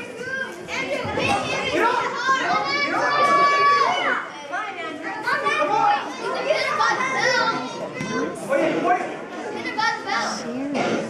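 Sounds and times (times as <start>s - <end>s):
children shouting: 0.0s - 8.4s.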